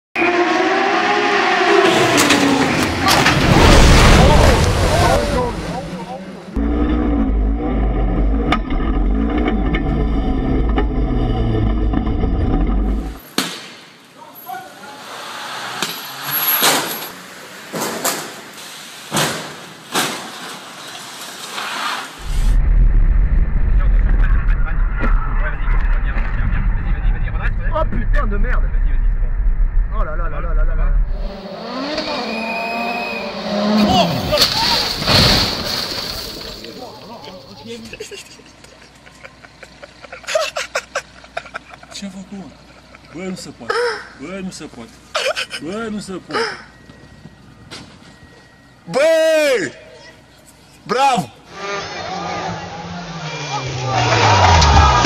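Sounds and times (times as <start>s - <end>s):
rally car engine at high revs: 0.2s - 3.6s, 31.1s - 34.3s, 51.4s - 55.0s
car engine and road noise: 0.2s - 49.0s, 49.8s - 55.0s.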